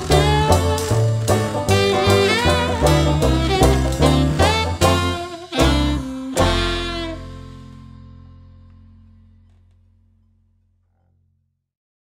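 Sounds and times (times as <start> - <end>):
swing band final chord: 0.0 - 9.4
low double bass notes: 0.0 - 11.0.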